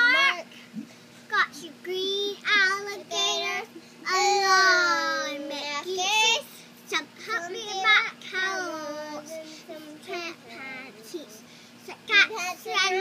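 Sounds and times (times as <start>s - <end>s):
girl singing unaccompanied: 0.0s - 0.6s, 1.3s - 13.0s.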